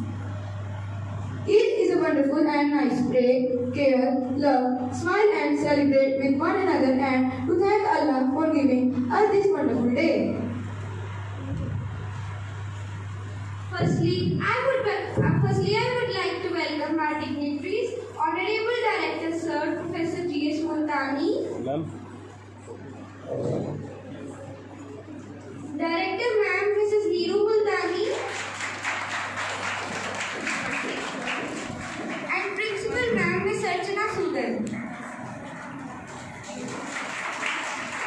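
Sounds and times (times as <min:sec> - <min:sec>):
low electrical hum: 0:00.0 - 0:38.0
audience clapping: 0:27.8 - 0:33.6, 0:34.6 - 0:38.0.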